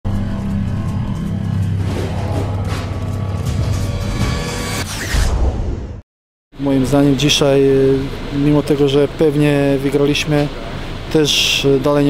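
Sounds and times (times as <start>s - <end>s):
intro music: 0.1s - 5.0s
deep hit: 1.5s - 6.0s.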